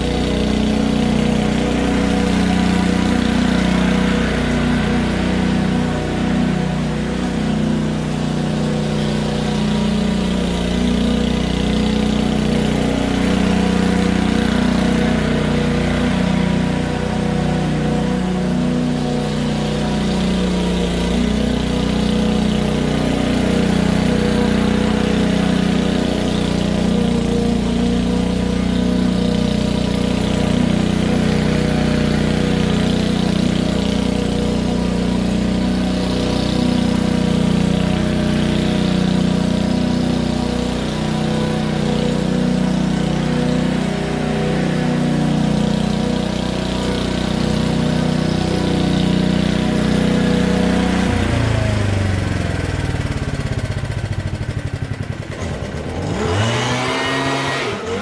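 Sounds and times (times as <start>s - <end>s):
small petrol engine running: 0.0s - 58.0s.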